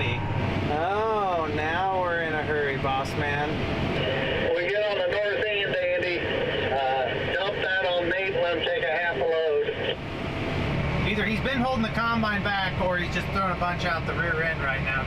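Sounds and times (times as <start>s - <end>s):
farm machinery engines droning: 0.0s - 15.0s
voice over two-way radio: 4.0s - 10.0s.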